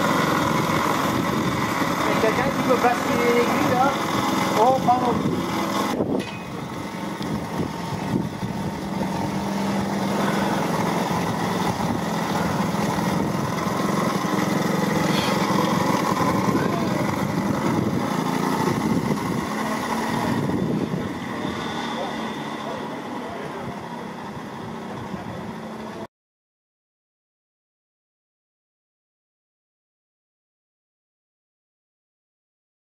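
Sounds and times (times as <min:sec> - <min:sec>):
small locomotive engine running: 0:00.0 - 0:26.1.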